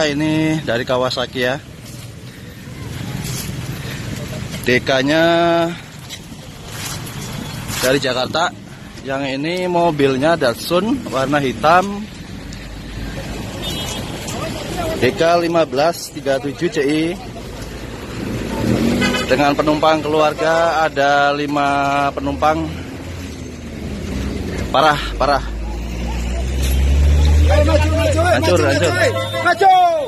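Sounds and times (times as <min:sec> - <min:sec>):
man's voice: 0:00.0 - 0:01.8, 0:04.2 - 0:06.0, 0:07.8 - 0:12.2, 0:14.4 - 0:17.6, 0:19.2 - 0:22.9, 0:24.6 - 0:25.7, 0:27.3 - 0:30.0
passing vehicles rumble: 0:00.0 - 0:30.0.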